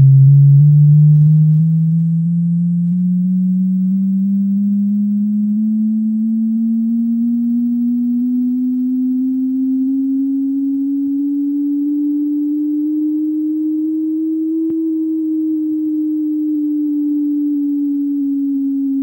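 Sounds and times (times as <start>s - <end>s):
pure tone climbing in pitch: 0.0s - 19.0s.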